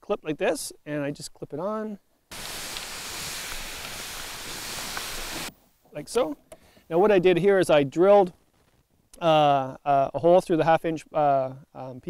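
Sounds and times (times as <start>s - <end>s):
steady hiss: 2.3s - 8.3s.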